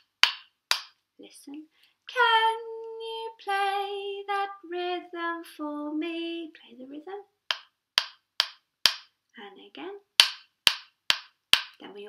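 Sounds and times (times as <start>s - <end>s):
wooden sticks struck together: 0.0s - 1.0s, 7.5s - 9.1s, 10.2s - 11.8s.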